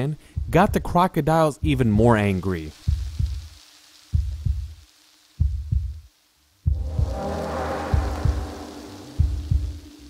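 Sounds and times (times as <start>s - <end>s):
deep heartbeat-like thumps: 0.4s - 0.9s, 2.9s - 3.4s, 5.4s - 6.0s, 6.7s - 10.0s
faint held tone: 6.7s - 10.0s.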